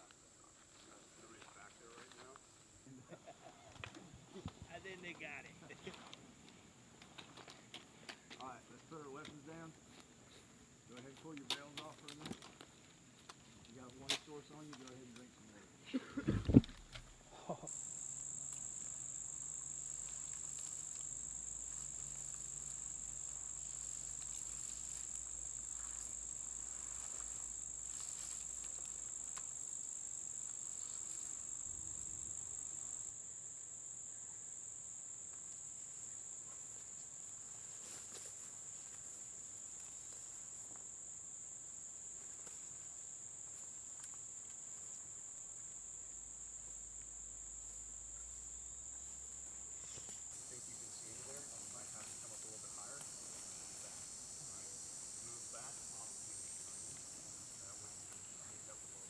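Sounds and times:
insect chorus drone: 0.0s - 59.0s.

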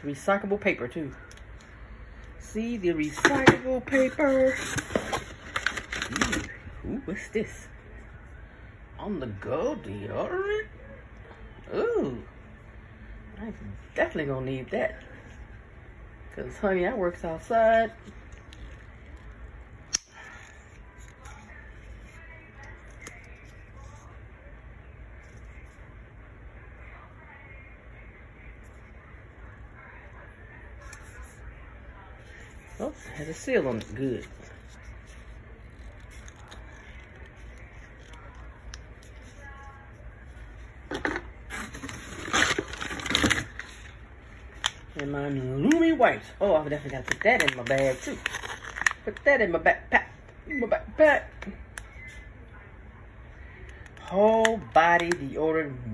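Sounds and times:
packaging rustling and crinkling: 3.1s - 6.6s, 41.5s - 45.8s, 46.7s - 49.3s.

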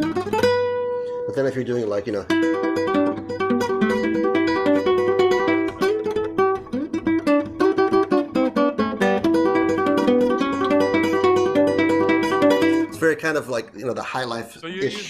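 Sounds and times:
fingerpicked classical guitar: 0.0s - 13.0s.

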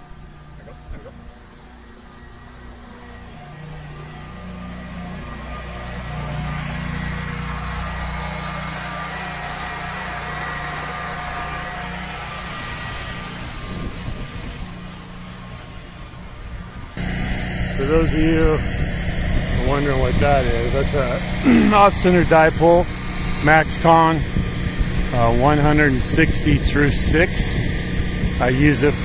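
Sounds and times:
electric motor humming with whine: 0.0s - 29.0s.

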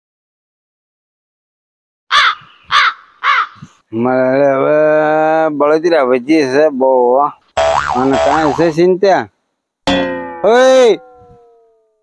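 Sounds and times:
crow cawing: 2.1s - 3.7s.

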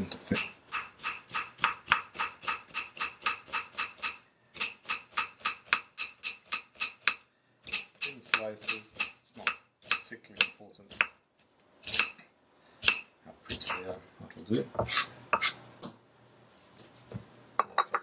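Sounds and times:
knife slicing onion on wood: 0.7s - 11.2s, 11.8s - 12.2s, 14.8s - 15.6s.

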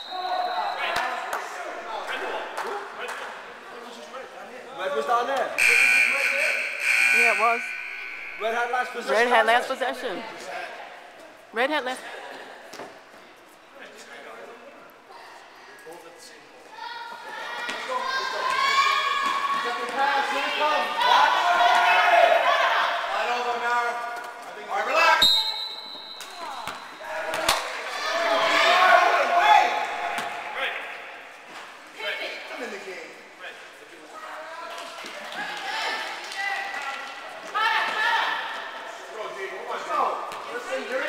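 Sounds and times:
players and spectators shouting: 5.6s - 10.2s, 17.4s - 23.6s, 26.2s - 31.3s
ball bouncing on court: 26.2s - 27.7s.

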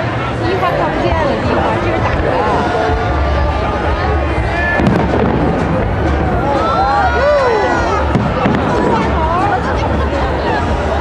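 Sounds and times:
crowd shouting and chatter: 0.0s - 11.0s
fireworks bangs: 4.7s - 6.5s, 8.0s - 9.3s.

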